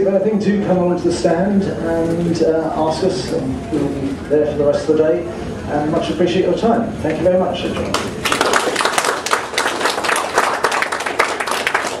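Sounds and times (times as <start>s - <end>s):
audience applauding: 7.9s - 12.0s.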